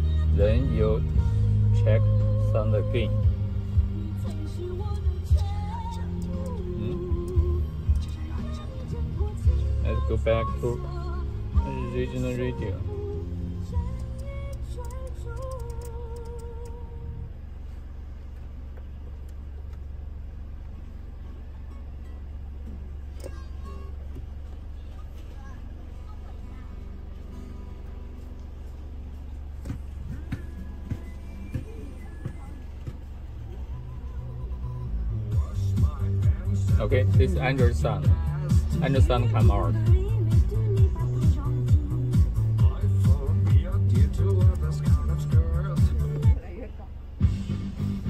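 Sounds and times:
music over car speakers: 0:00.0 - 0:48.0.

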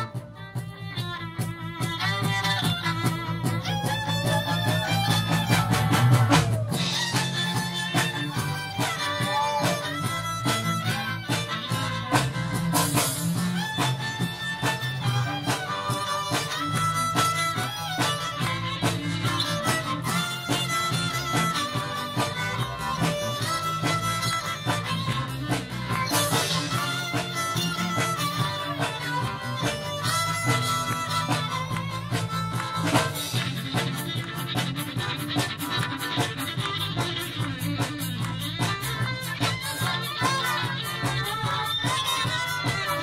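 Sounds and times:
drum kit and electric bass: 0:00.0 - 0:43.0
string band playing: 0:00.0 - 0:43.0.

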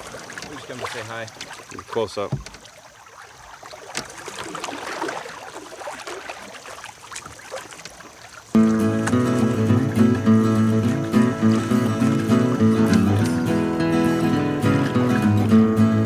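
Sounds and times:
canoe paddle strokes: 0:00.0 - 0:15.3
water sounds: 0:00.0 - 0:16.0
background music: 0:08.6 - 0:16.0.

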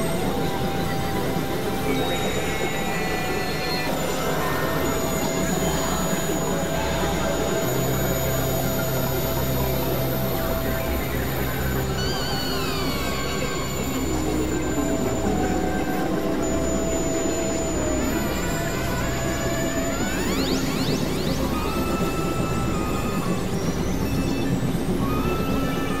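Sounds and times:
synthesizer drone: 0:00.0 - 0:26.0.

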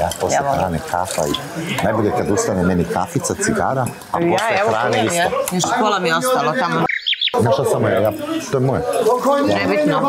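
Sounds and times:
people talking loudly: 0:00.0 - 0:10.0.

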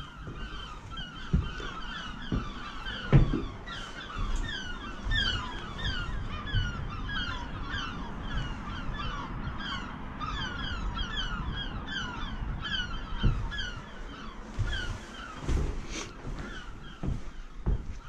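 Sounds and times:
many birds calling: 0:00.0 - 0:18.0.

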